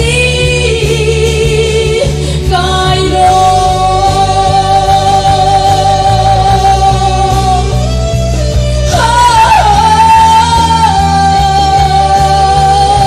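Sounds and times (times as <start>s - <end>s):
woman singing gospel into microphone: 0.0s - 8.0s, 8.8s - 13.0s
amplified backing music: 0.0s - 13.0s.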